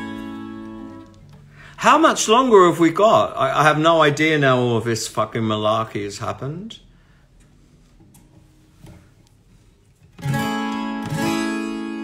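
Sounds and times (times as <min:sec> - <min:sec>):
acoustic guitar strums: 0:10.0 - 0:12.0.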